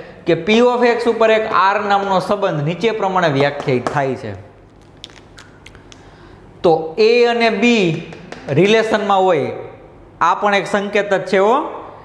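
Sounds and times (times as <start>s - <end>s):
man speaking: 6.6s - 11.8s.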